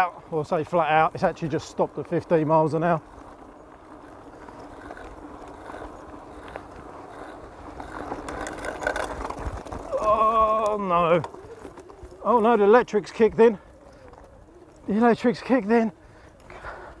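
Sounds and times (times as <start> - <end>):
gravel crunching: 0.0 - 17.0
wind and tyre noise: 0.0 - 17.0
person's drawn-out voiced sound: 9.9 - 10.9.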